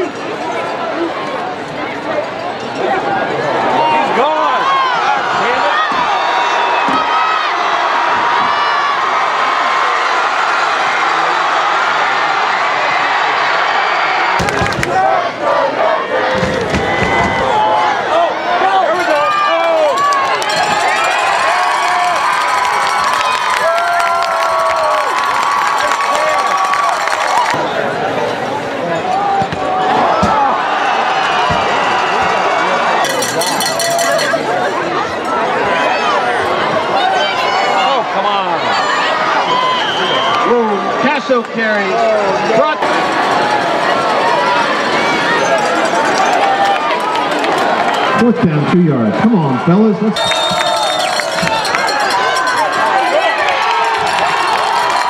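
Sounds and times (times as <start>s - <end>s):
football crowd cheering and shouting: 0.0s - 55.0s.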